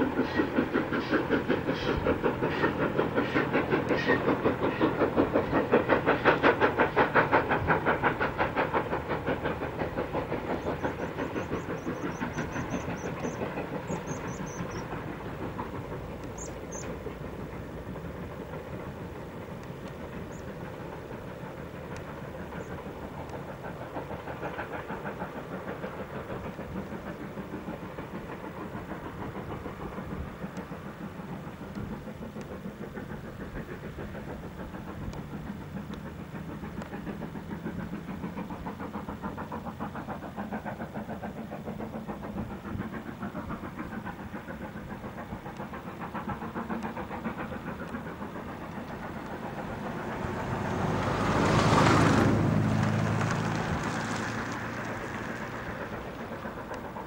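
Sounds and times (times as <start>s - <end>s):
steam locomotive exhaust beats: 0.0s - 57.0s.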